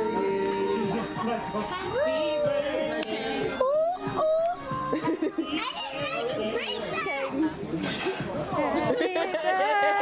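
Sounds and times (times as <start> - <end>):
group exclaiming and cheering: 0.2 - 7.2, 8.6 - 10.0.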